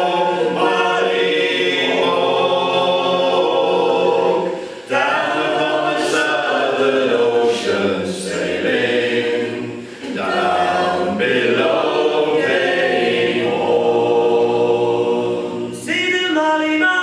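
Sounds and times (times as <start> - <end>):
group singing a cappella in harmony: 0.0 - 17.0.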